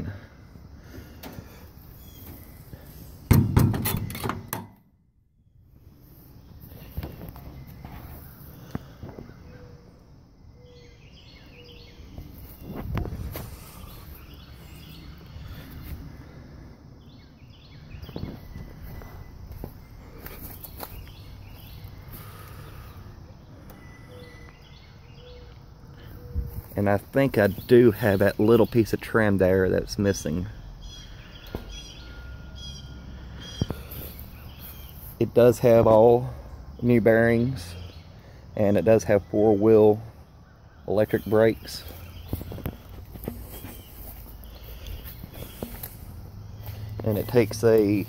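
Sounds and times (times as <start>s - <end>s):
bird chirps: 1.4s - 4.5s, 6.3s - 16.3s, 17.0s - 29.5s, 30.2s - 48.0s
trailer door thunk: 3.3s - 4.8s.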